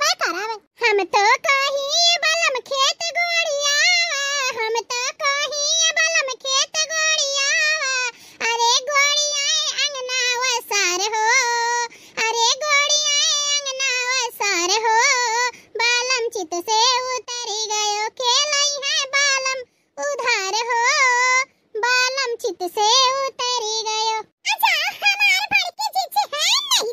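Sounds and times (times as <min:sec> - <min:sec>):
high-pitched cartoon voice: 0:00.0 - 0:03.0, 0:23.8 - 0:26.9.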